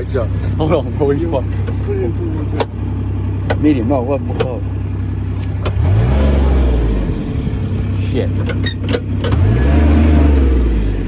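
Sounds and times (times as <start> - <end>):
diesel engine revving: 0.0 - 11.0.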